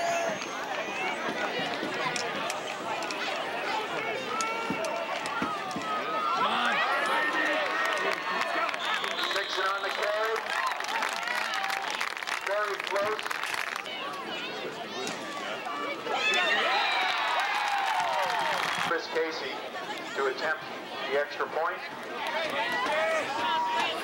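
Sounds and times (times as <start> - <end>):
crowd shouting and cheering: 0.0 - 24.0.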